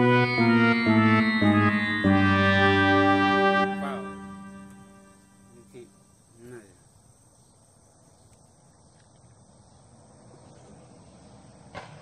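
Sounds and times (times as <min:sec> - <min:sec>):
high-pitched hum: 0:00.0 - 0:06.1.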